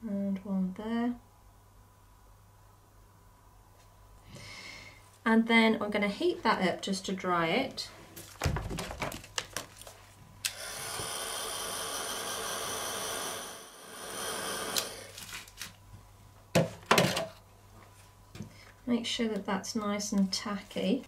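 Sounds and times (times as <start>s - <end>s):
handling knocks: 8.4s - 9.7s
heat tool switch: 10.4s - 15.1s
heat tool fan blowing: 10.4s - 15.7s.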